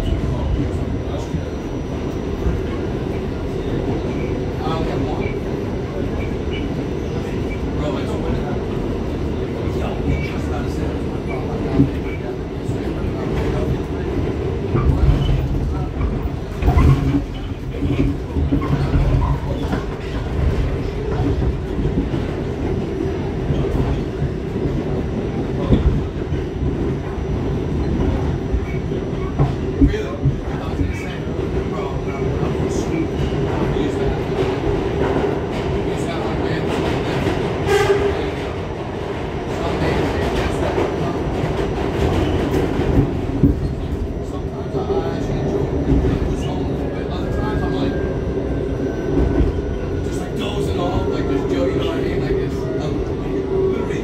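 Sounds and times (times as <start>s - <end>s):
subway train wheels rumbling: 0.0s - 54.0s.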